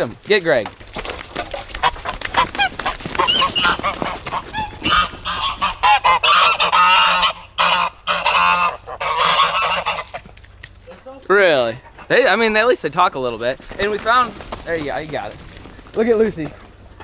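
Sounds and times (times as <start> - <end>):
geese honking: 1.4 - 10.4, 11.4 - 14.3.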